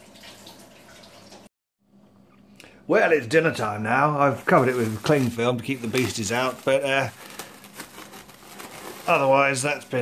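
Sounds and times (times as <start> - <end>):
cling film crinkling: 4.2 - 10.0.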